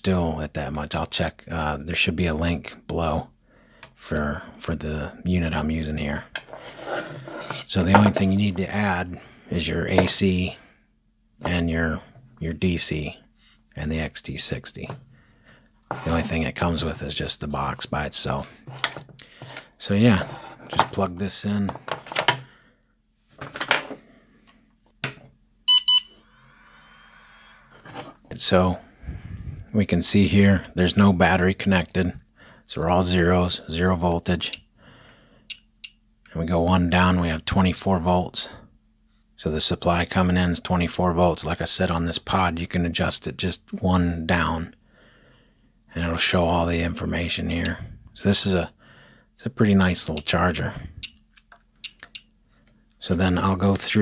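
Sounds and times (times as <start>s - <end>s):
faint steady hum: 25.6s - 54.0s
short electronic beeps: 25.7s - 26.2s.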